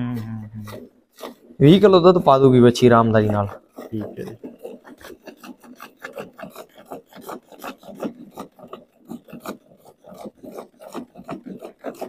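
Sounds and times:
milk squirting into steel bucket: 0:00.6 - 0:12.0.

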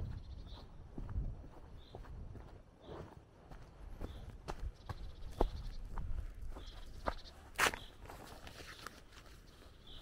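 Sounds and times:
footstep crunch: 0:00.0 - 0:10.0
footsteps walking outdoors: 0:00.0 - 0:10.0.

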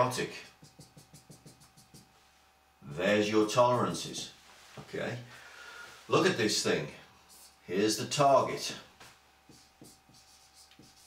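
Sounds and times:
marker pen writing on whiteboard: 0:00.0 - 0:02.1, 0:09.5 - 0:11.0.

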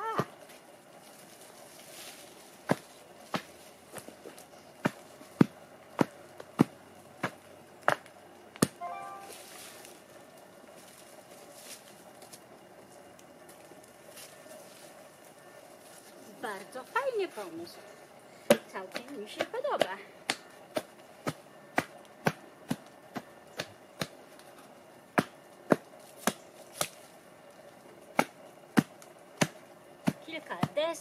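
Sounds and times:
wooden tamper striking soil: 0:02.1 - 0:10.0, 0:18.5 - 0:31.0.

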